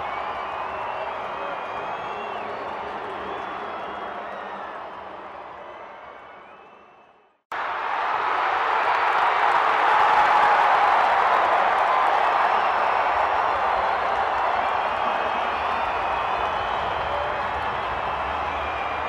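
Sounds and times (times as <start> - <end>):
crowd clapping: 0.0 - 19.0.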